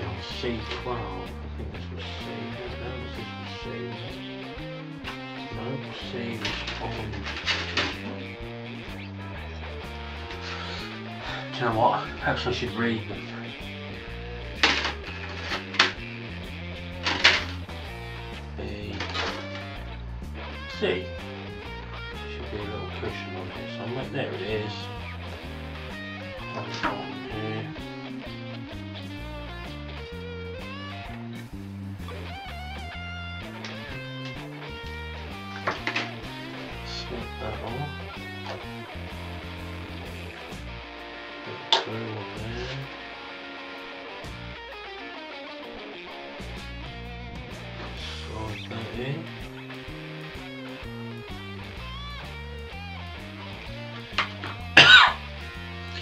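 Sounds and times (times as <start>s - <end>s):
guitar background music: 0.0s - 56.0s.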